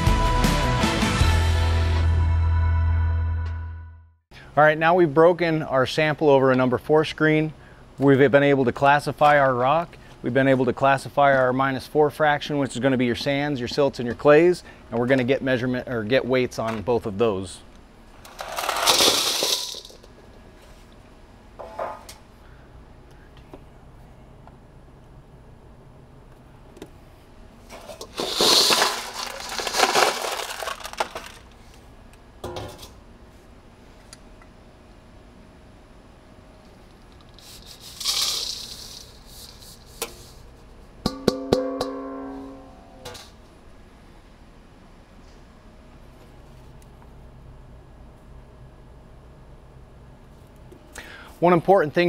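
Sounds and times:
stones rattling into metal bowl: 18.3s - 20.1s, 27.8s - 31.4s, 37.9s - 39.2s
dry soil pouring from bowl: 28.2s - 31.4s
steel bowl clanging and ringing: 41.1s - 43.2s.

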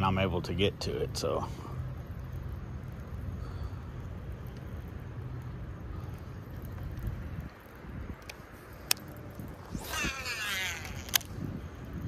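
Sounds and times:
wind rumble on microphone: 4.4s - 12.0s
fishing reel click: 9.7s - 11.3s.

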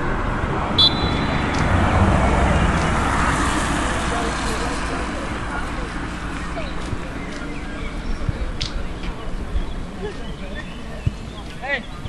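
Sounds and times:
distant voices: 0.0s - 12.0s
referee's whistle blast: 0.8s - 1.5s.

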